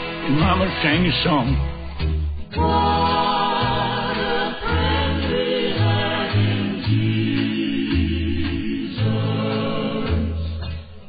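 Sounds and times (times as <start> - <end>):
choir singing gospel chords: 2.4 - 10.7.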